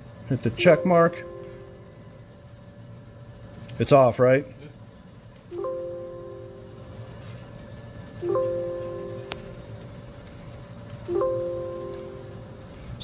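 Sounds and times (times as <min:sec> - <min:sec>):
electronic warning chime: 0:00.6 - 0:02.1, 0:08.2 - 0:09.6, 0:11.1 - 0:12.6.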